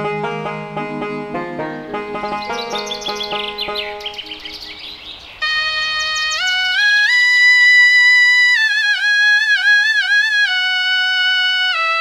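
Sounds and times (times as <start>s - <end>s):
plucked-string background music: 0.0s - 11.9s
bird chirping: 1.9s - 7.3s.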